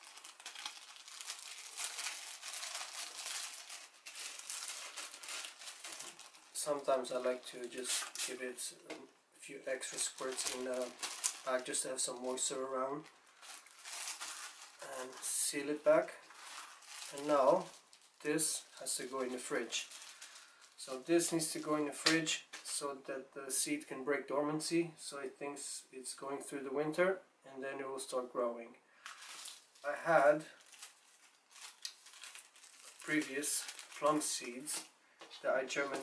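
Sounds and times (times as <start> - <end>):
plastic bag crinkling: 0.0 - 8.5, 9.8 - 21.7, 29.0 - 36.0.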